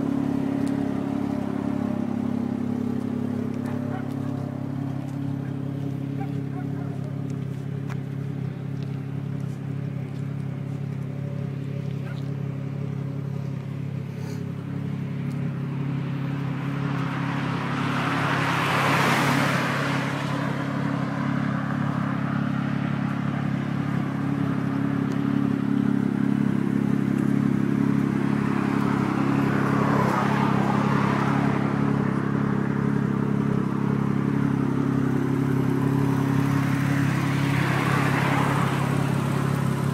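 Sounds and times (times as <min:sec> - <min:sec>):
car engine idling: 0:00.0 - 0:39.9.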